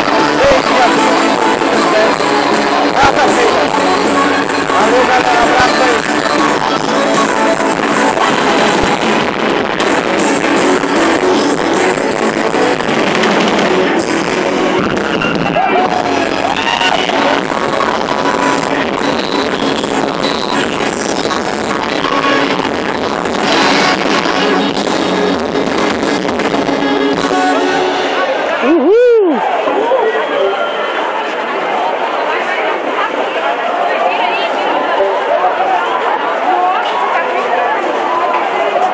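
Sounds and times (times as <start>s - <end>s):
loud live music: 0.0s - 33.2s.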